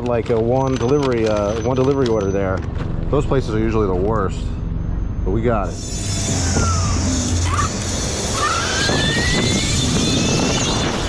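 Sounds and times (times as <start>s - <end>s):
electric scooter motor whining: 5.7s - 11.0s
wind rumble on microphone: 6.4s - 11.0s.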